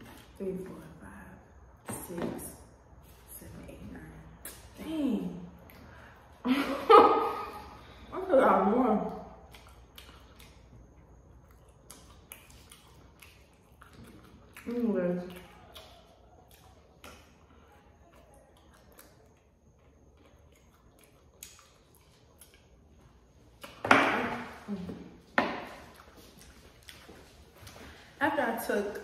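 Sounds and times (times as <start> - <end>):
chewing mouth sounds: 9.1 - 23.8, 25.6 - 28.1.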